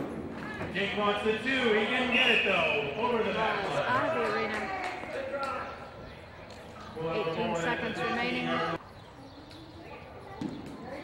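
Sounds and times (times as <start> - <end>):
indistinct talking: 0.5 - 11.0.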